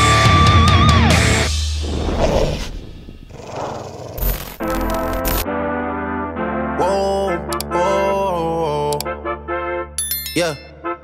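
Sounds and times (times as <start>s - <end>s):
wolf snarling growl: 1.8s - 4.6s.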